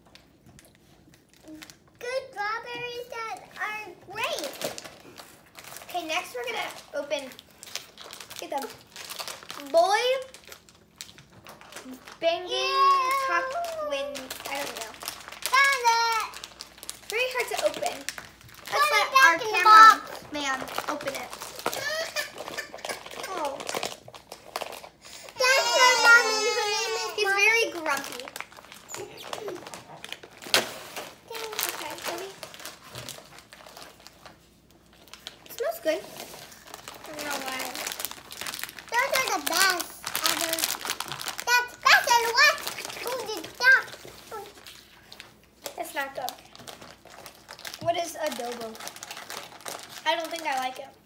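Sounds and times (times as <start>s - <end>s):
foil snack bag crinkling: 2.9s - 51.0s
children's voices: 11.8s - 16.4s, 17.1s - 23.6s, 25.3s - 29.8s, 38.9s - 44.6s
child's high-pitched vocal sound: 25.4s - 27.4s.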